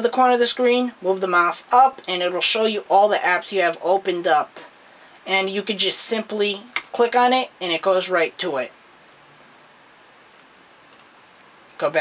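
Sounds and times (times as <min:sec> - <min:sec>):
faint hiss: 0:00.2 - 0:12.0.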